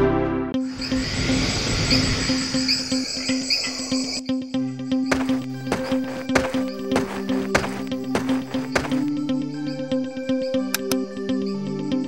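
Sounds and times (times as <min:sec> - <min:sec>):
crickets chirping: 0:00.7 - 0:04.2.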